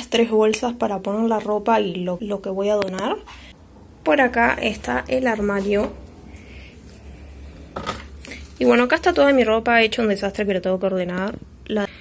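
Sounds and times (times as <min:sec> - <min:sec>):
steady low hum: 0:02.5 - 0:10.6.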